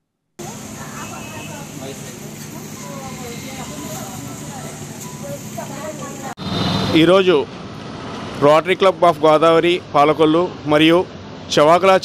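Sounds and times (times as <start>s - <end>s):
faint voices talking: 0.4s - 6.4s
traffic hum: 0.4s - 12.0s.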